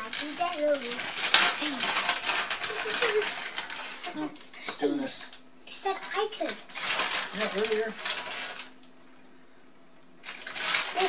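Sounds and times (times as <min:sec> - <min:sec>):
plastic bag crinkling: 0:00.0 - 0:05.0, 0:06.0 - 0:08.9, 0:10.2 - 0:11.0.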